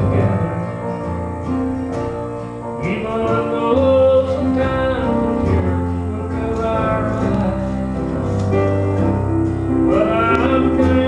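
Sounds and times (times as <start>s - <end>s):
man singing into a microphone: 0.0s - 1.1s, 2.8s - 8.8s, 9.9s - 11.0s
electronic keyboard: 0.0s - 11.0s
guitar: 0.0s - 11.0s.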